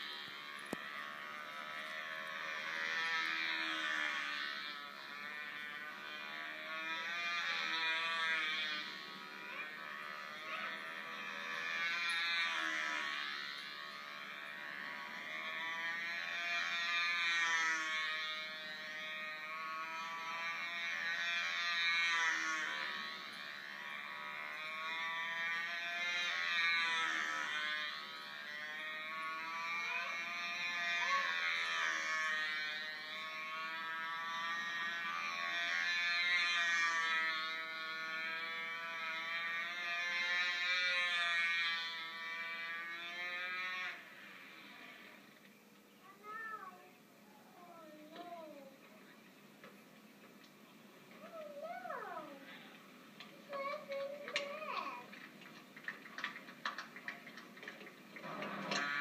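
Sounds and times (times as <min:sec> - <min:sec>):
model plane engine buzzing: 0:00.0 - 0:49.2, 0:51.1 - 0:59.0.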